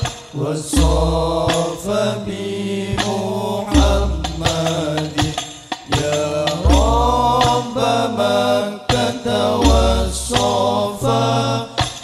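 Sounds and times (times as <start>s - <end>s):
deep frame drum strokes: 0.0s - 12.0s
devotional song with long notes: 0.0s - 12.0s.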